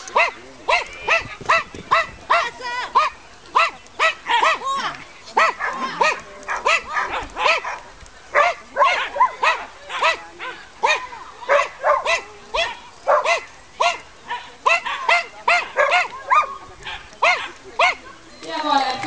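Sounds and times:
dog barking high-pitched: 5.4 - 7.8, 8.4 - 14.0.

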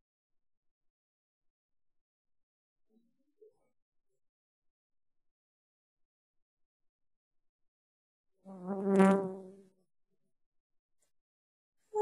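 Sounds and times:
flying insect buzzing: 8.5 - 9.6.

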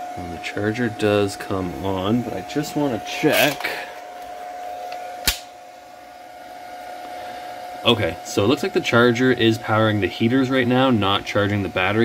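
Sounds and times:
high-pitched equipment hum: 0.0 - 12.0
sharp click: 5.2 - 5.5.

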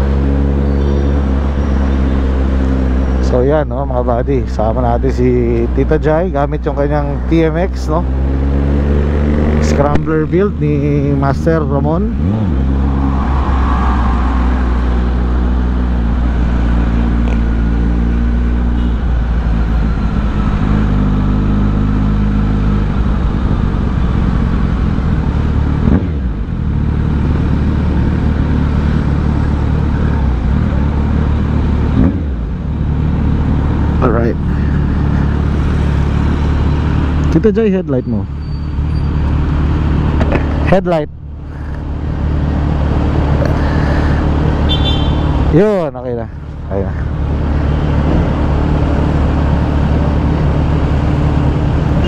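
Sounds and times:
motorcycle engine revving: 6.8 - 40.7, 46.6 - 52.0.

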